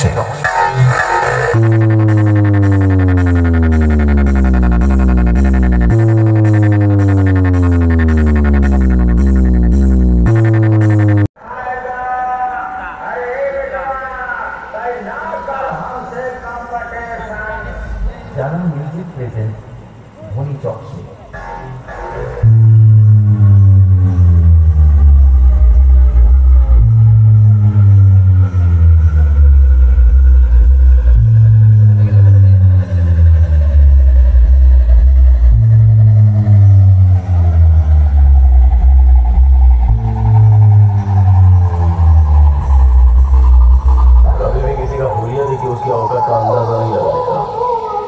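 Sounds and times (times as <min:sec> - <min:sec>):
deep bass notes stepping down: 0:00.0 - 0:11.4, 0:21.4 - 0:46.4
thin rising tone: 0:21.9 - 0:48.0.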